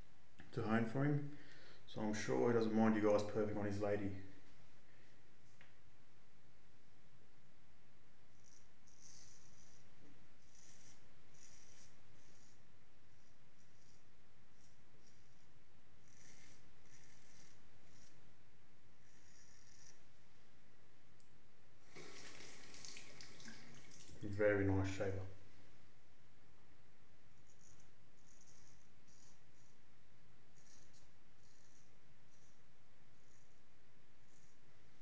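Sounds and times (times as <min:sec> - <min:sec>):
razor scraping stubble: 0:10.4 - 0:12.6, 0:16.0 - 0:18.2, 0:19.0 - 0:20.0.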